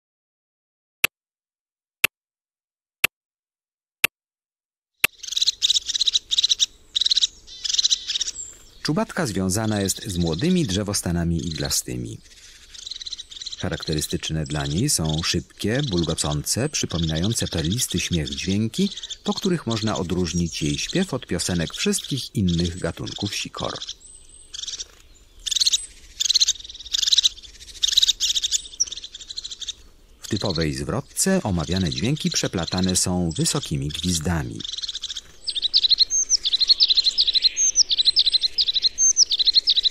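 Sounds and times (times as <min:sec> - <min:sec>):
bird trilling: 0:05.0 - 0:39.9.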